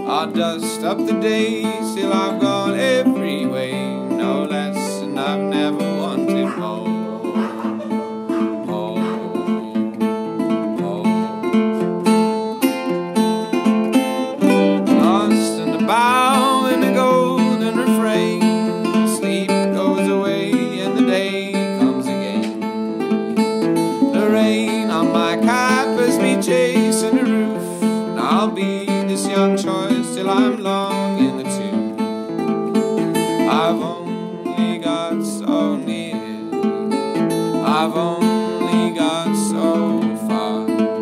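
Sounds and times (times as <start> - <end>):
resonator guitar fingerpicked: 0.0 - 41.0.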